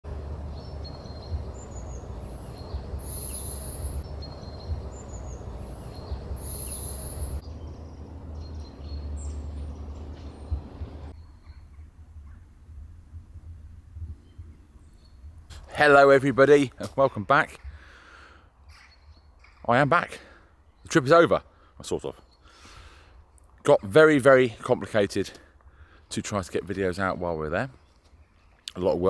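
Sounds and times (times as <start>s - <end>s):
birds chirping: 0.1s - 12.5s, 14.1s - 29.0s
wind rumble on microphone: 0.1s - 15.6s.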